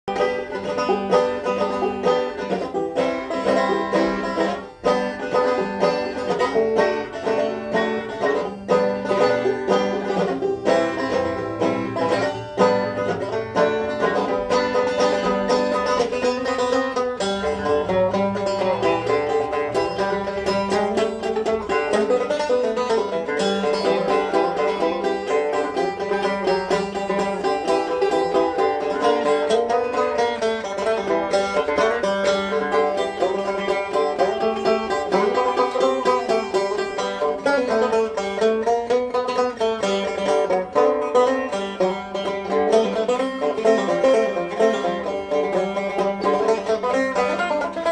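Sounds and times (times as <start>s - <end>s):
fingerpicked banjo: 0.0s - 47.9s.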